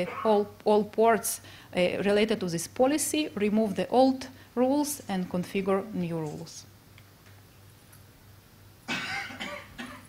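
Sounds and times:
person coughing: 0:08.9 - 0:10.0.

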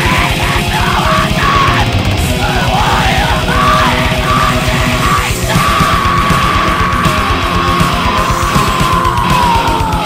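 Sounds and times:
distorted guitars: 0:00.0 - 0:10.0
harsh screamed vocal: 0:00.0 - 0:10.0
rapid drumming: 0:00.0 - 0:10.0.

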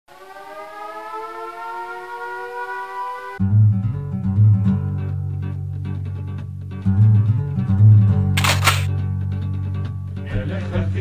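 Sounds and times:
air-raid siren winding up: 0:00.1 - 0:03.4.

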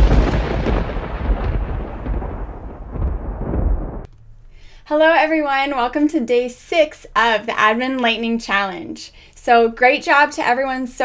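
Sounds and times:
thunder rolling rumble: 0:00.0 - 0:04.1.

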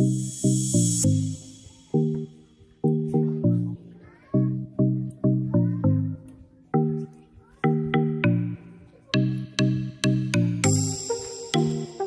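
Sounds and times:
melody of sharply struck notes: 0:00.0 - 0:03.3, 0:09.2 - 0:12.0.

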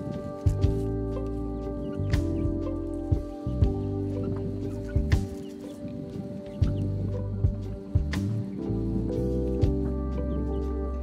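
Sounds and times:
background music with chords: 0:00.0 - 0:11.0
low bass line: 0:00.0 - 0:11.0.

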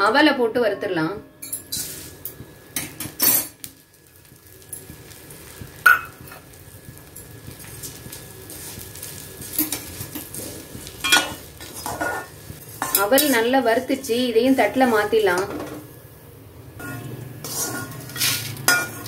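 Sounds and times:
metal ladle scraping pan: 0:16.8 - 0:19.0.

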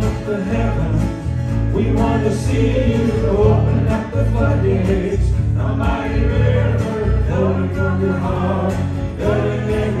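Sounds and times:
choir singing gospel song: 0:00.0 - 0:10.0
instrumental accompaniment with bass: 0:00.0 - 0:10.0.

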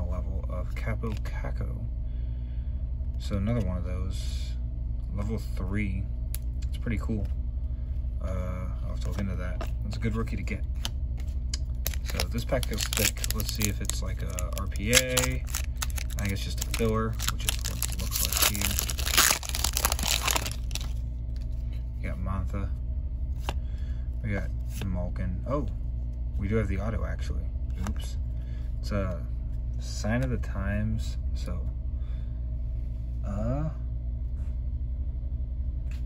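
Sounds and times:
low background rumble: 0:00.0 - 0:36.0
foil wrapper tearing and crinkling: 0:11.6 - 0:21.0.

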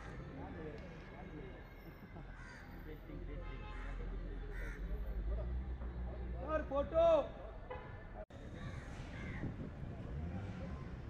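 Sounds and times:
murmured outdoor voices: 0:00.0 - 0:11.0
crows cawing: 0:02.2 - 0:02.7, 0:03.8 - 0:04.9.

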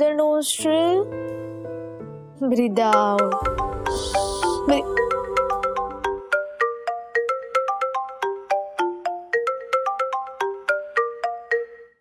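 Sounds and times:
phone ringtone: 0:02.9 - 0:12.0.

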